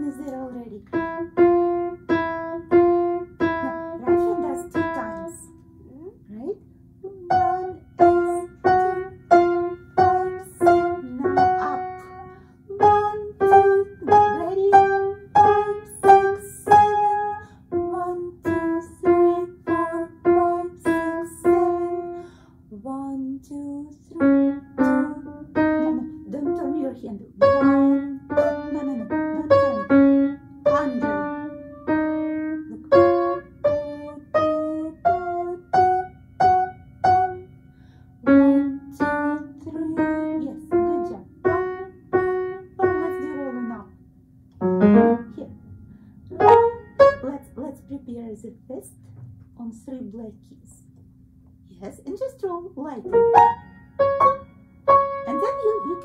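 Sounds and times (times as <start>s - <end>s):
upright piano slow simple melody: 0.0s - 6.0s, 7.0s - 47.9s, 53.0s - 56.0s.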